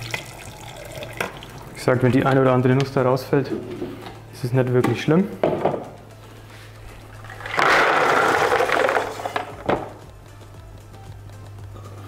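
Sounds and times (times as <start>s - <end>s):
water pouring into a bucket: 0.0s - 1.7s.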